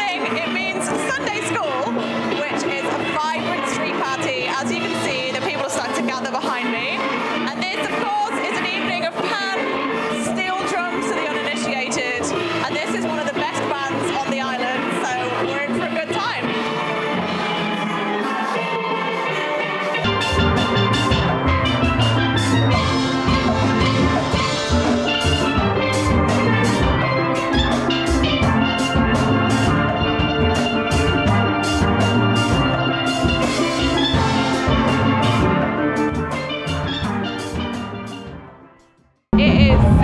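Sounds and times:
drum kit: 0:00.0 - 0:38.5, 0:39.3 - 0:40.0
steel band playing: 0:00.0 - 0:38.8.

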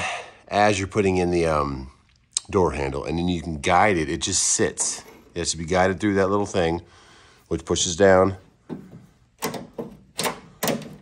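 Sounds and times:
metal clicks of door handle mechanism: 0:08.7 - 0:11.0.

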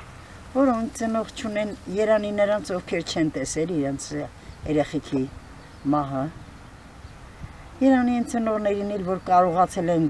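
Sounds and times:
elderly woman speaking: 0:00.5 - 0:06.4, 0:07.8 - 0:10.0.

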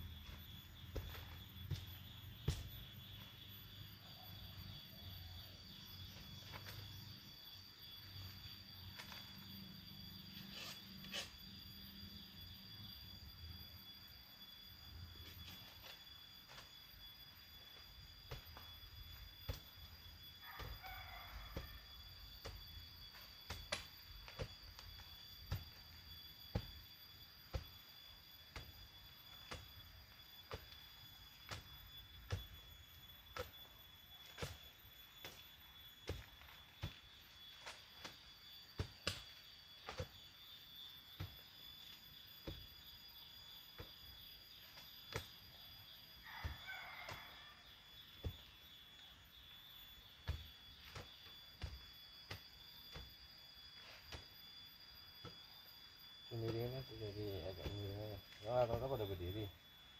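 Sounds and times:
hand tool striking soil: 0:00.2 - 0:02.9, 0:22.4 - 0:26.8, 0:28.5 - 0:30.8, 0:31.4 - 0:32.6, 0:33.3 - 0:33.6, 0:34.2 - 0:35.4, 0:36.0 - 0:37.0, 0:37.6 - 0:40.2, 0:41.2 - 0:42.8, 0:44.7 - 0:45.5, 0:48.1 - 0:48.6, 0:50.2 - 0:53.2.

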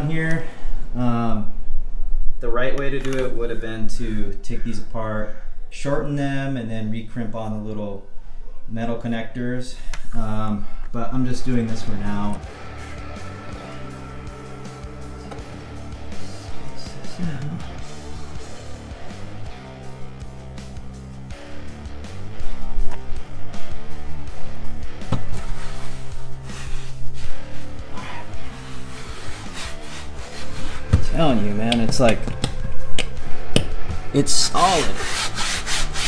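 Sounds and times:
background music: 0:11.4 - 0:36.0
solar panel rubbing and scraping: 0:25.2 - 0:32.5.

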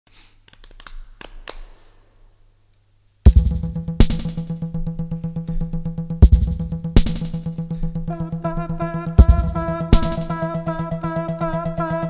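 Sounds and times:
low electrical hum: 0:01.0 - 0:11.9.

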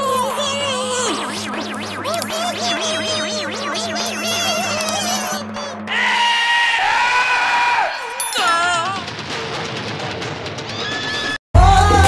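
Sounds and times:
high-pitched scream-like cry: 0:02.0 - 0:09.0.

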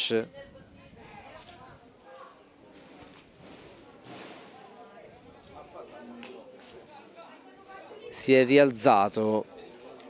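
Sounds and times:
distant people calling and talking: 0:00.0 - 0:10.0.

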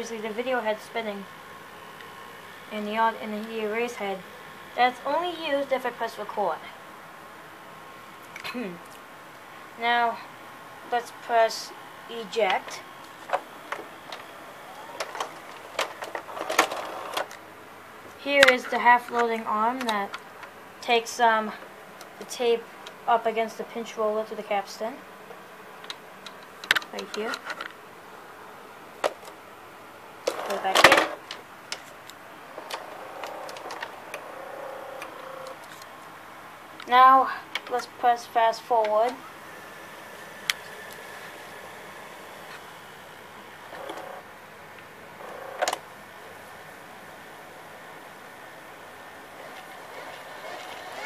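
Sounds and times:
faint motor whirr: 0:00.0 - 0:51.0.

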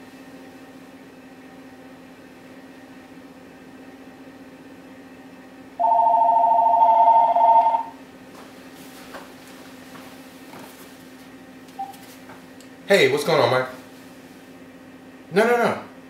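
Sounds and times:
telephone ringing: 0:05.8 - 0:08.0.

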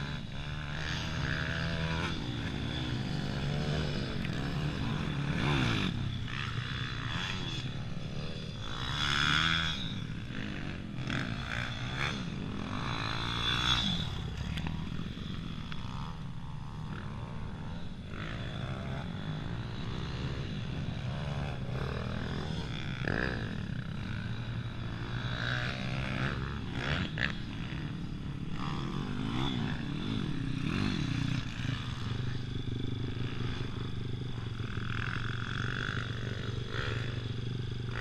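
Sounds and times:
dirt bike engines revving: 0:00.0 - 0:38.0
steady low hum: 0:00.0 - 0:38.0.

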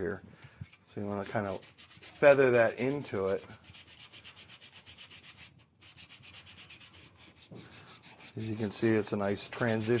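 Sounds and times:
hand sanding wood: 0:01.0 - 0:10.0.

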